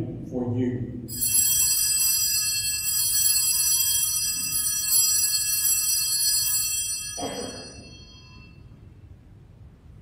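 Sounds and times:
altar bells ringing: 1.1 - 8.8.

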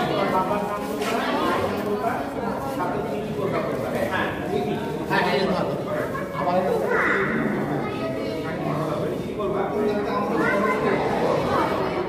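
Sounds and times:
adults and children talking: 0.0 - 12.0.

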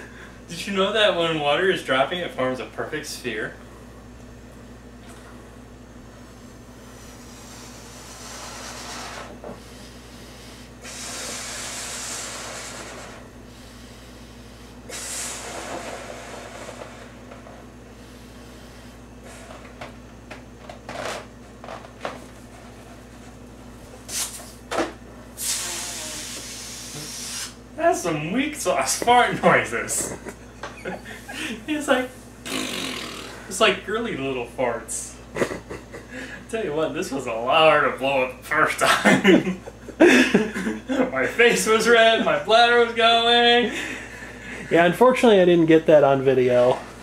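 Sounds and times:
hissing breaths into balloon: 6.9 - 17.2, 24.1 - 24.5, 25.4 - 27.6, 32.4 - 33.5.

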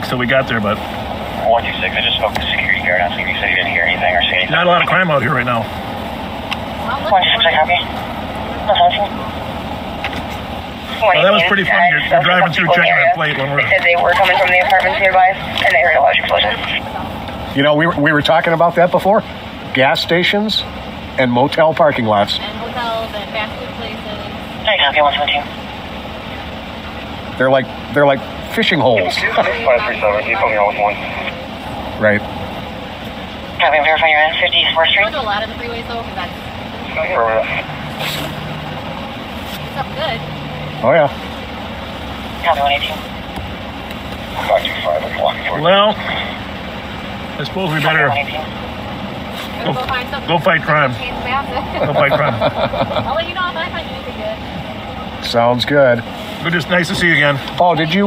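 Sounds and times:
car engine idling: 0.0 - 58.0
people laughing: 51.4 - 53.3.

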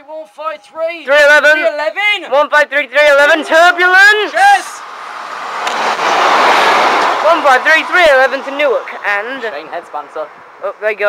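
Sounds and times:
train rushing past platform: 4.8 - 7.9.

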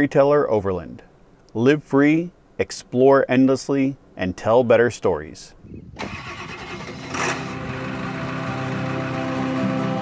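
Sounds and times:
diesel truck engine running: 6.0 - 10.0
background music: 6.5 - 10.0.

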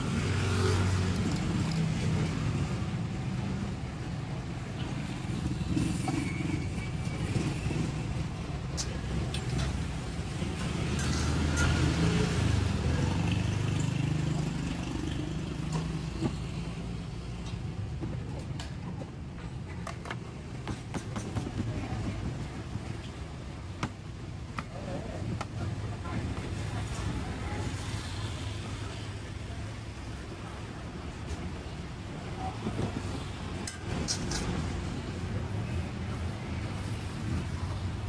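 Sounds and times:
street noise: 0.0 - 38.0.

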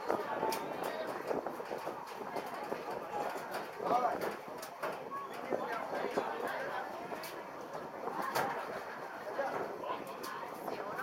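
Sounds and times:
murmur of voices: 0.0 - 11.0.

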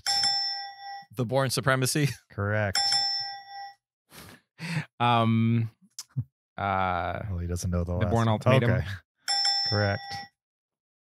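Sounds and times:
bell-like ding: 0.0 - 1.1, 2.8 - 3.8, 9.3 - 10.3.

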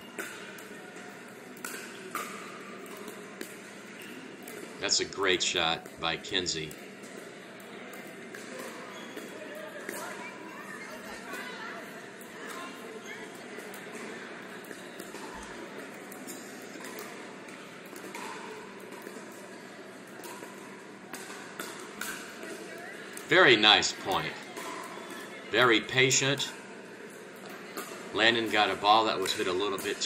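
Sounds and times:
murmur of voices: 0.0 - 30.0.

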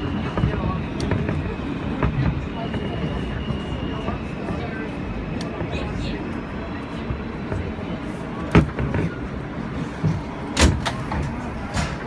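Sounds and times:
subway car rumble: 0.0 - 12.0.

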